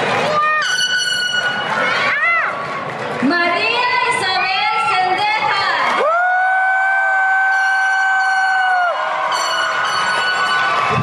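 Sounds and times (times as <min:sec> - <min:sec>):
high woo cheer: 0:05.9 - 0:11.0.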